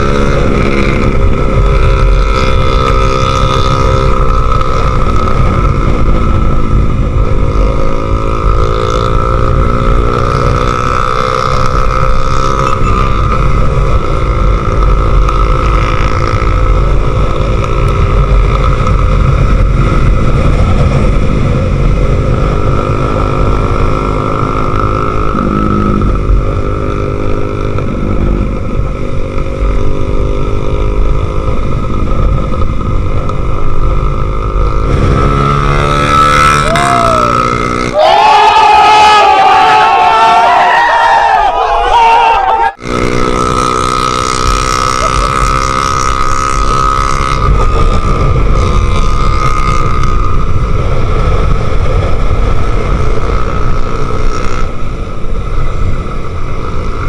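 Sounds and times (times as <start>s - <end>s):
wind rumble on microphone: 0.0s - 38.0s, 42.7s - 57.0s
motorcycle engine running: 0.0s - 38.4s, 42.7s - 57.0s
crowd shouting: 36.7s - 42.8s.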